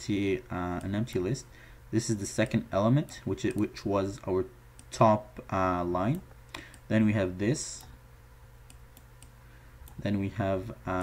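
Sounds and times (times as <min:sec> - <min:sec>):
steady low hum: 0:00.0 - 0:11.0
computer mouse clicks: 0:02.4 - 0:03.7, 0:08.7 - 0:10.0.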